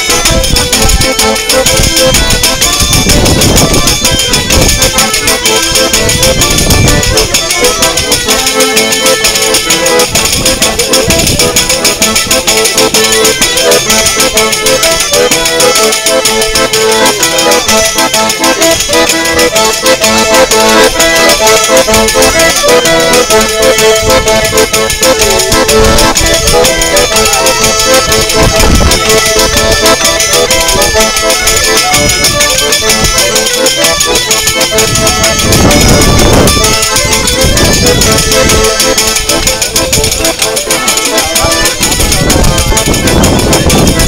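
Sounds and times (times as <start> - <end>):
accordion music: 0.0 - 44.0.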